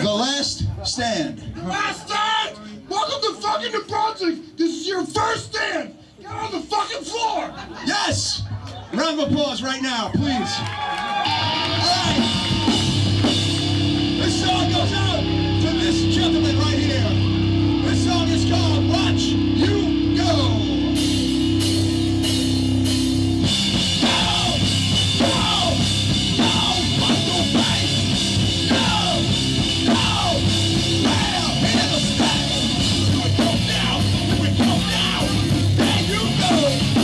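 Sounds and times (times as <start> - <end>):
punk band playing live: 11.2 - 37.0
held guitar and bass chord: 12.8 - 37.0.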